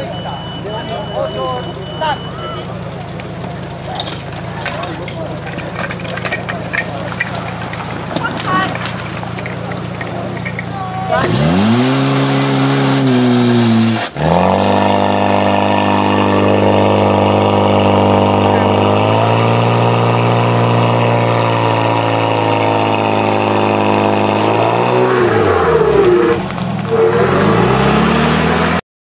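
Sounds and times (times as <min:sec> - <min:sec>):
pump engine running hard: 0:00.0 - 0:28.8.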